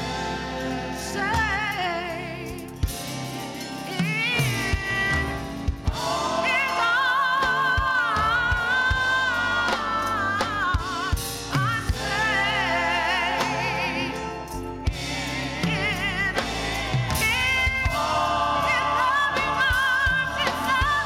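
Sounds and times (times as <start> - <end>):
band accompaniment: 0.0 - 21.0
gospel choir singing into microphones: 0.0 - 21.0.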